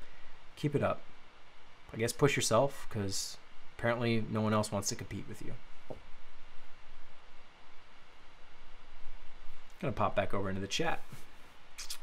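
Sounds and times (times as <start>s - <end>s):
background hiss: 0.0s - 12.0s
low room rumble: 0.0s - 12.0s.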